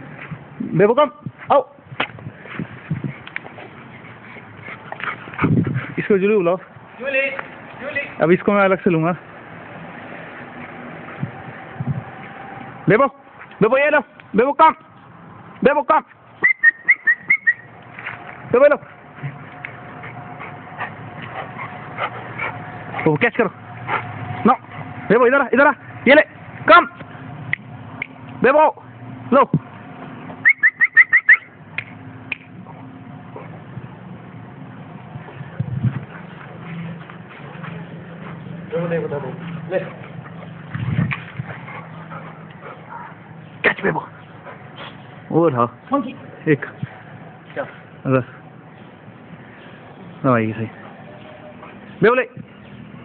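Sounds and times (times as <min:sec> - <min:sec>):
quick whistles: 0:16.4 - 0:17.7, 0:30.4 - 0:31.5
dogs barking: 0:18.9 - 0:25.1, 0:32.6 - 0:33.6, 0:39.3 - 0:45.2.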